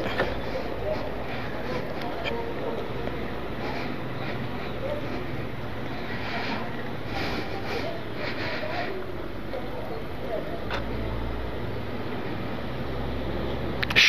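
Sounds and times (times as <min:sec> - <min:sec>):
faint voices: 0:00.0 - 0:13.8
steady low hum: 0:00.0 - 0:13.9.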